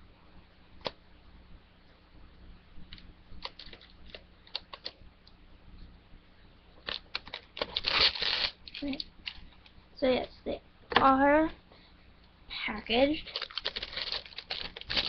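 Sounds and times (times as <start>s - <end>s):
shrink wrap clicks and crinkles: 2.9s - 5.0s, 6.8s - 9.8s, 13.2s - 15.0s
shrink wrap crinkling and tearing: 3.4s - 4.9s, 6.8s - 9.7s, 13.1s - 15.0s.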